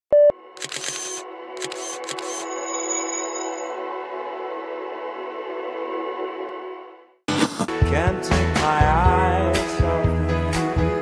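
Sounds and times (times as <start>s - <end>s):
camera shutter clicks: 0.6s - 2.5s.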